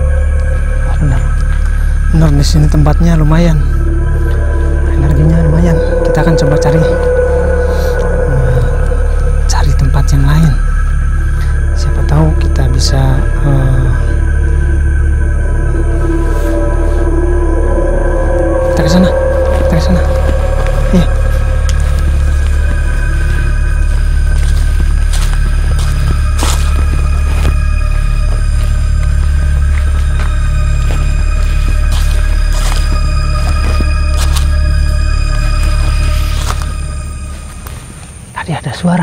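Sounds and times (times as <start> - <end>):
eerie drone music: 0.0 - 39.0.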